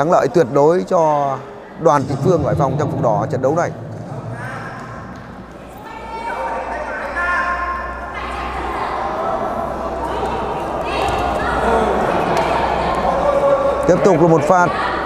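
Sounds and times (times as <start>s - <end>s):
low hum: 1.8s - 6.5s.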